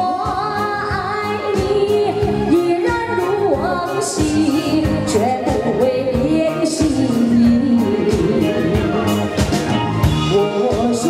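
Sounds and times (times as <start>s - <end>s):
woman singing pop ballad: 0.0s - 9.2s
live band with steady beat: 0.0s - 11.0s.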